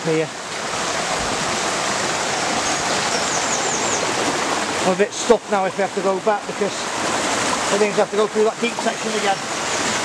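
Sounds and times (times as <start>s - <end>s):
river water rushing over stones: 0.0s - 10.0s.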